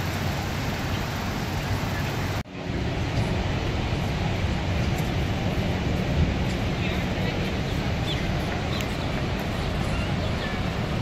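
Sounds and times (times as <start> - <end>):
waterfall roaring: 0.0 - 11.0.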